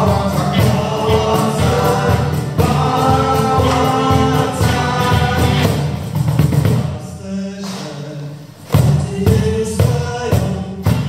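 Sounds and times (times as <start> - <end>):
man and woman singing: 0.0 - 6.0, 6.8 - 11.0
cajon drumming: 0.0 - 7.0, 8.6 - 11.0
acoustic guitars: 0.0 - 11.0.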